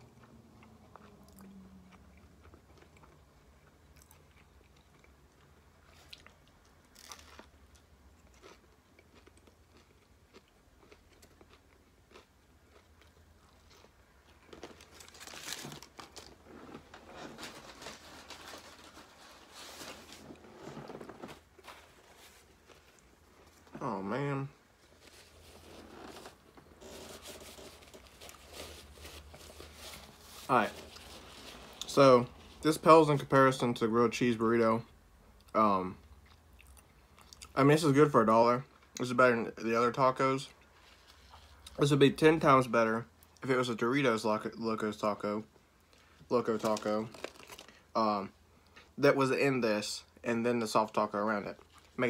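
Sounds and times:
chewing and crunching food: 0.0s - 32.7s, 35.4s - 37.6s, 45.8s - 49.0s, 51.5s - 52.0s
paper wrapper rustling: 14.5s - 23.8s, 24.8s - 32.8s, 46.4s - 47.8s.

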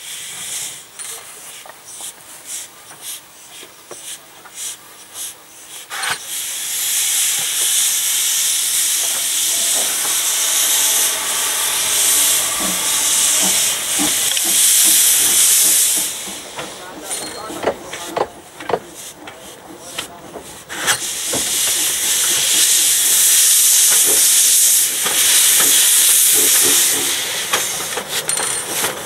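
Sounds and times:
steam locomotive hissing: 0.0s - 29.0s.

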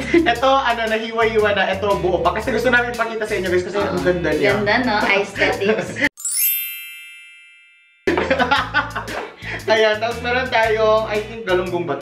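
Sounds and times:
sparkling chime sound effect: 6.2s - 8.6s.

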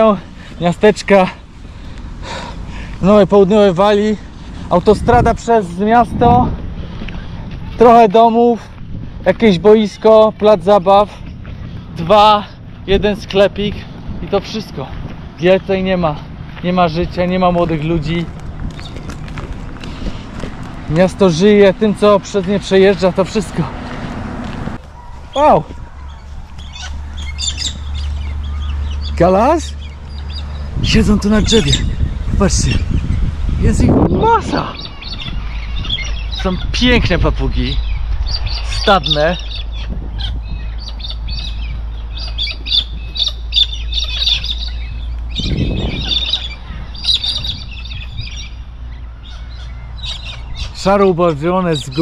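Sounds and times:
steady low rumble: 0.0s - 51.9s
flock of birds calling: 0.0s - 52.0s
parrots squawking: 25.0s - 33.3s, 34.2s - 36.8s, 37.7s - 50.9s.

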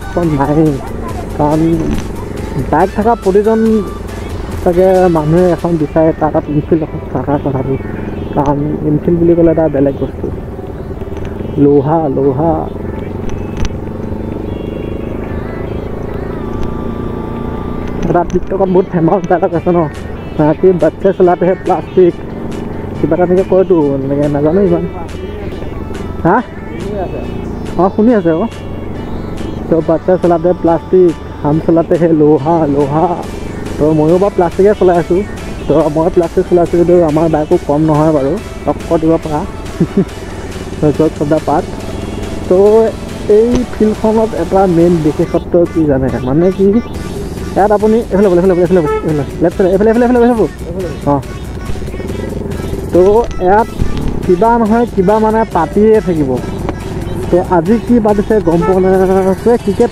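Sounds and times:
person speaking: 0.0s - 10.4s, 18.0s - 28.6s, 29.4s - 59.9s
background music: 0.0s - 59.9s
motorcycle engine running: 0.0s - 59.9s.

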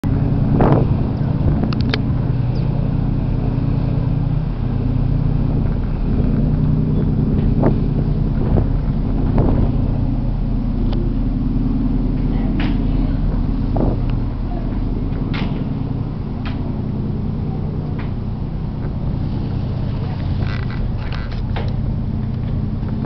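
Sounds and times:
ferry engines droning: 0.0s - 23.0s.

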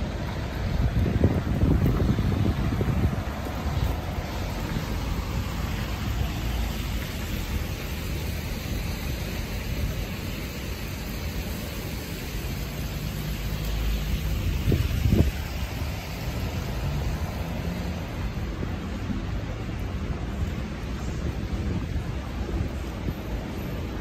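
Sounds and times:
cars passing on wet road: 0.0s - 24.0s.

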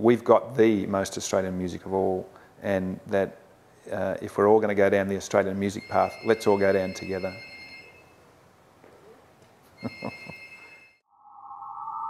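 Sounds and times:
man laughing: 9.8s - 10.5s
high electronic tone: 9.8s - 12.0s.

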